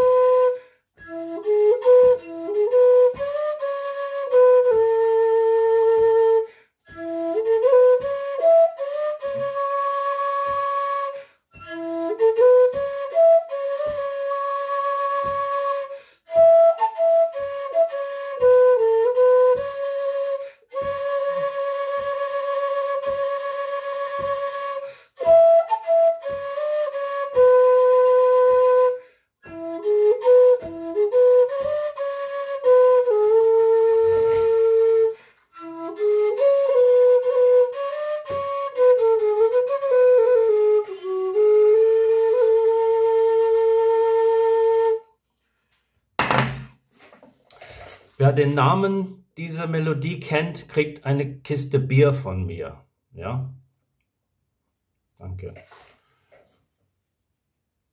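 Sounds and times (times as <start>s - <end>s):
metal whistle melody: 0.0s - 45.2s.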